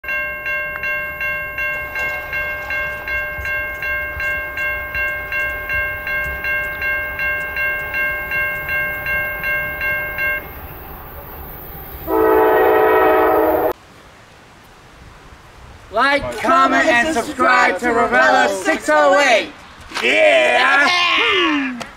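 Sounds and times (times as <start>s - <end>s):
crossing bell ringing: 0.0s - 13.8s
train air horn blast: 12.1s - 13.8s.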